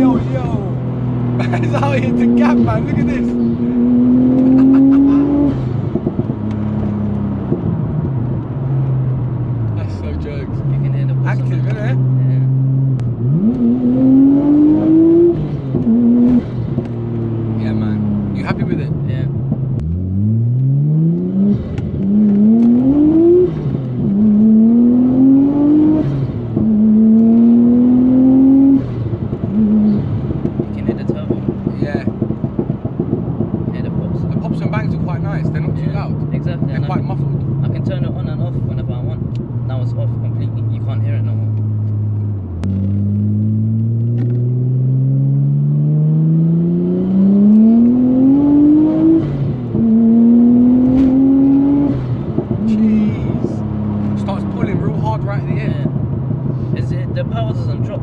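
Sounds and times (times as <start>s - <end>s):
car engine accelerating: 0.0s - 58.0s.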